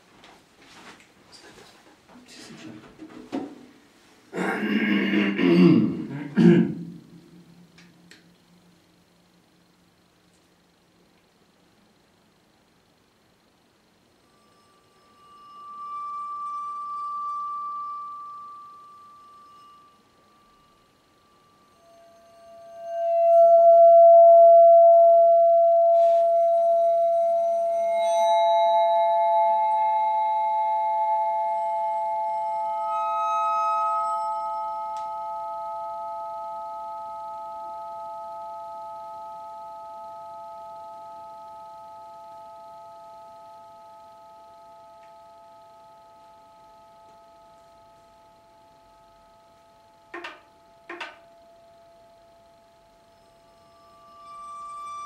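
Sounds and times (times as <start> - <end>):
bell-like metal percussion ringing: 14.2 - 51.9, 53.0 - 55.0.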